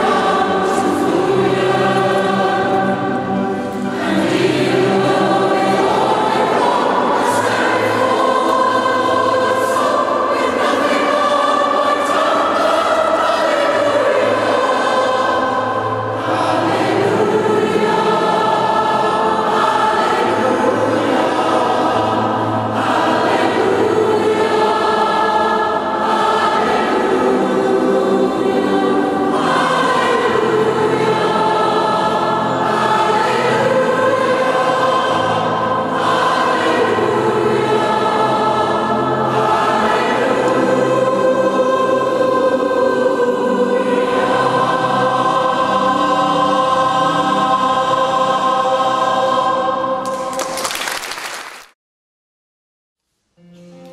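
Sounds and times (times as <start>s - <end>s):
mixed choir singing held chords: 0.0s - 50.8s.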